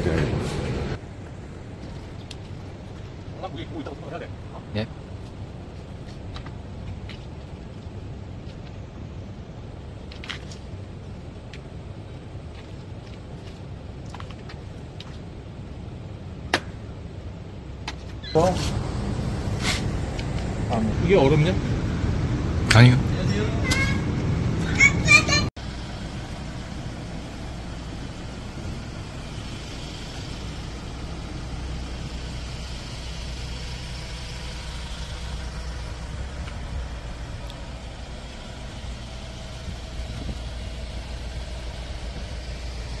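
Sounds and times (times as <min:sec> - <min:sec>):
low rumble of street traffic: 0:00.0 - 0:43.0.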